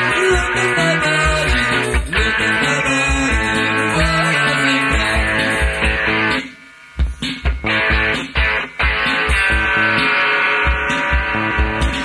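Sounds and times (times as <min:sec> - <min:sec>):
sustained guitar chords: 0:00.0 - 0:12.0.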